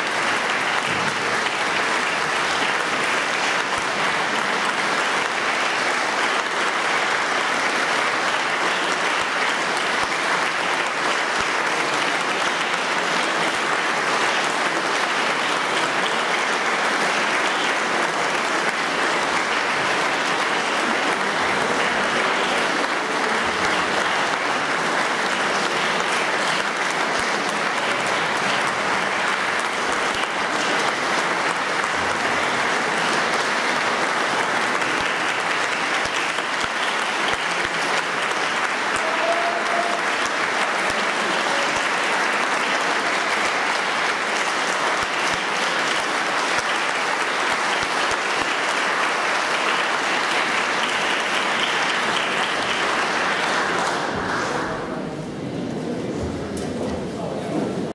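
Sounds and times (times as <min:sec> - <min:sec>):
audience applauding: 0:00.0 - 0:55.2.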